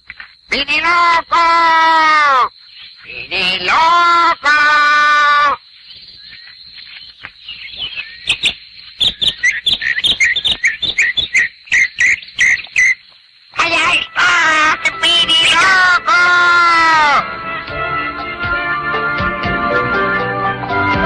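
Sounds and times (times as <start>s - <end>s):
person shouting: 0.5s - 2.5s, 3.4s - 5.6s, 13.6s - 17.2s
high bird-like chirps: 5.7s - 13.3s.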